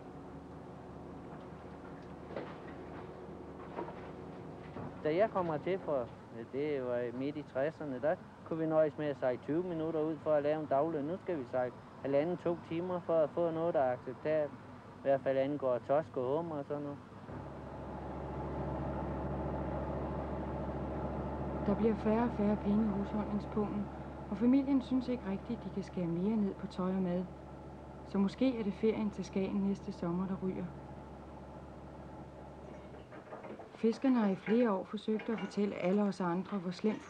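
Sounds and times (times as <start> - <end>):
boat engine droning: 0.0 - 6.7, 17.0 - 37.0.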